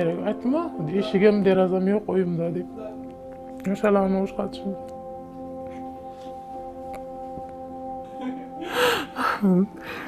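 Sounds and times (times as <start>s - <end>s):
background music drone: 0.0s - 10.0s
woman breathing sharply: 8.5s - 10.0s.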